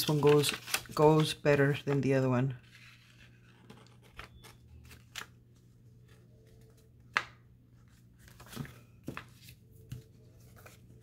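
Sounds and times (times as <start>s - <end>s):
paper envelopes rustling: 0.0s - 11.0s.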